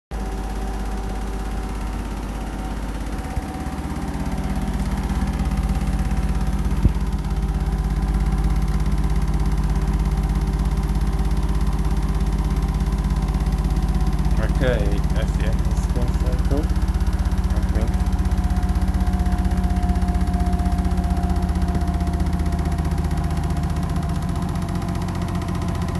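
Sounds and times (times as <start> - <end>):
washing machine spinning: 0.2 - 25.9.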